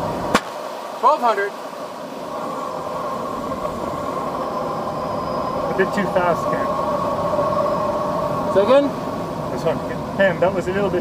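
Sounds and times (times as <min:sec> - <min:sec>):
air rushing past canopy: 0:00.0 - 0:11.0
steady tone: 0:00.0 - 0:11.0.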